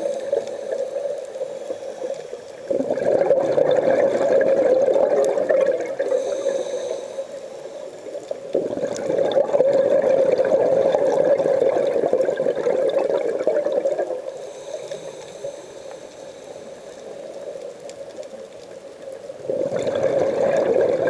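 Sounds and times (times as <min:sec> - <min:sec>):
underwater regulator bubbles: 0:00.0 - 0:07.0, 0:08.3 - 0:15.1, 0:19.3 - 0:21.0
faint high hiss: 0:00.0 - 0:12.1, 0:12.9 - 0:21.0.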